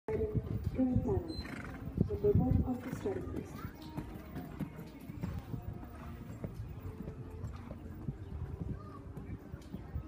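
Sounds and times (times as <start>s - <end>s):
horse hoofbeats: 0.1s - 10.0s.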